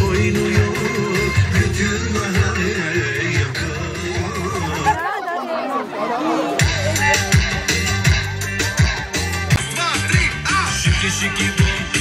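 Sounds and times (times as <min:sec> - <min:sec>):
loud dance music: 0:00.0 - 0:05.1, 0:06.5 - 0:12.0
women talking: 0:04.6 - 0:09.5.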